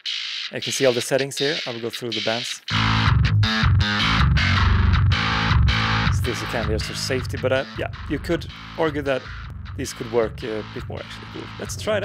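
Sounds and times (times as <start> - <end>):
distorted bass chugs: 1.3 - 12.0.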